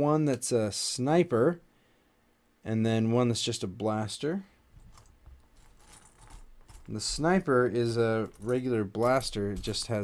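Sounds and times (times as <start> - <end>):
plastic pieces clicking and rattling: 4.9 - 7.2.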